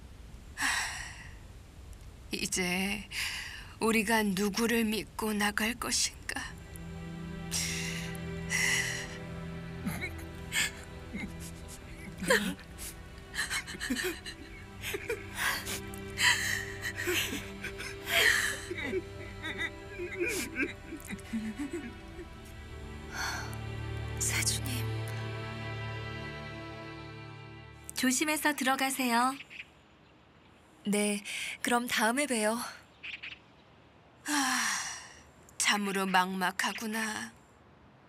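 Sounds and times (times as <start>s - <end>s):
sad background music: 3.8s - 28.9s
people sobbing and gasping: 9.8s - 22.4s.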